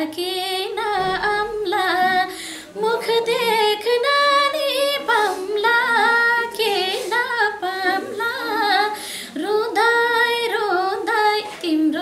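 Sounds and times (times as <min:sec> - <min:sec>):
woman singing unaccompanied: 0:00.0 - 0:12.0.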